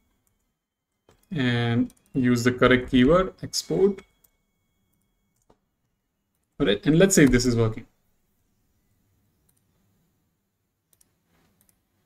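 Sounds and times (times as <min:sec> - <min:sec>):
computer mouse clicks: 0:00.2 - 0:02.2, 0:09.4 - 0:09.7, 0:10.9 - 0:11.8.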